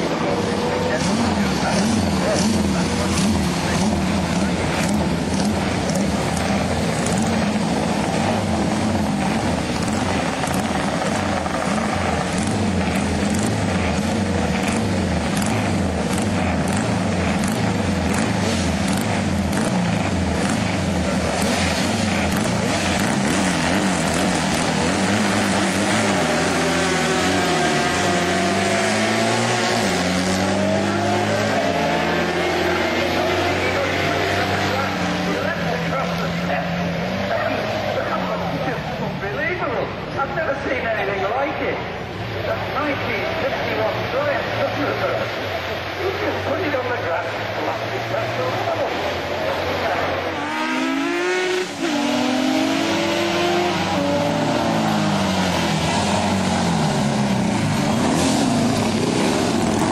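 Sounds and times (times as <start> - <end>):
racing engines at high revs: 0.0 - 59.9.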